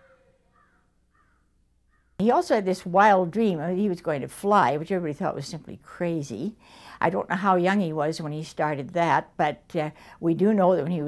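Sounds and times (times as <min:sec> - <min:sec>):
bird calling faintly: 0:00.0 - 0:02.2.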